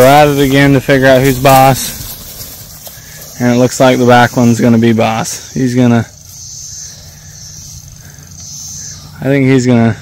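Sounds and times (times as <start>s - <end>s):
insects chirring: 0.0s - 10.0s
low steady rumble: 0.0s - 10.0s.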